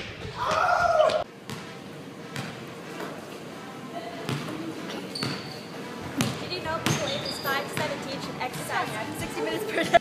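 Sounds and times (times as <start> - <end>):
basketball bouncing on wooden floor: 4.3 - 4.6, 5.2 - 5.5, 6.2 - 8.6.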